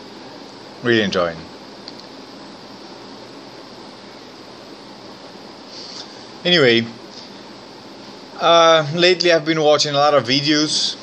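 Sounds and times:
faint higher hiss: 0.0s - 11.0s
room noise hiss: 0.0s - 11.0s.

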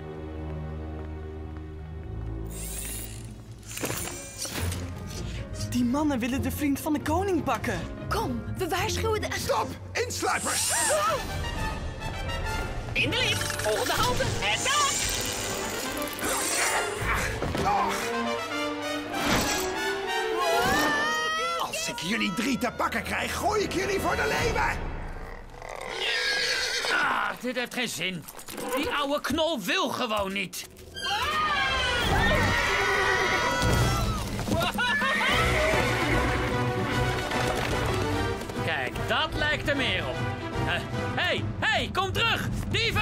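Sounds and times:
background music: 0.0s - 43.0s
horse whinnying: 25.2s - 27.4s, 30.9s - 36.6s
cartoon chase music: 31.1s - 42.3s.

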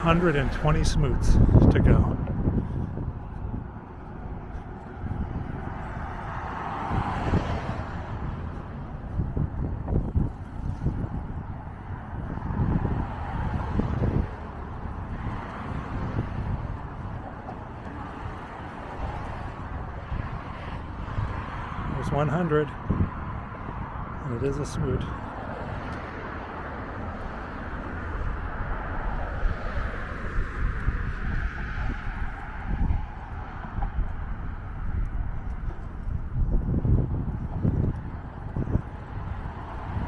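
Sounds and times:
road traffic passing: 0.0s - 40.0s
wind buffeting microphone: 0.0s - 40.0s.

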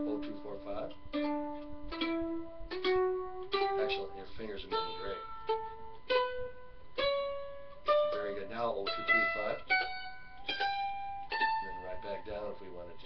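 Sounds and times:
mandolin picking a scale: 0.0s - 13.0s.

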